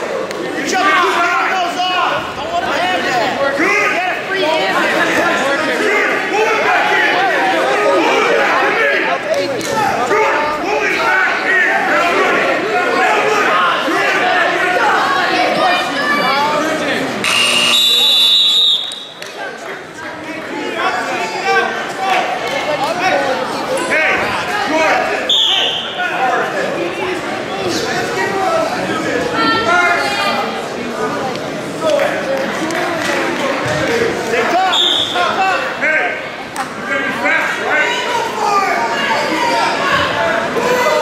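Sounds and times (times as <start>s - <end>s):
chatter in a gym: 0.0s - 41.0s
referee's whistle blast: 17.2s - 19.2s, 25.3s - 26.0s, 34.7s - 35.3s.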